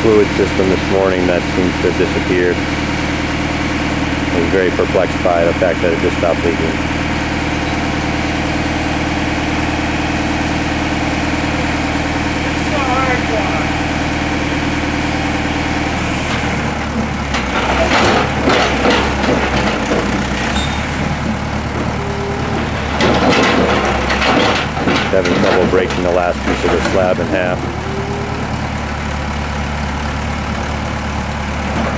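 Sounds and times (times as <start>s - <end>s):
backhoe engine running: 0.0s - 31.9s
concrete clattering and scraping: 22.5s - 27.7s.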